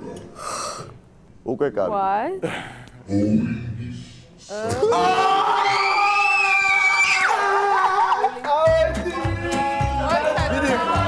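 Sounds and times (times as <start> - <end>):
people screaming in excitement: 4.8 - 8.4.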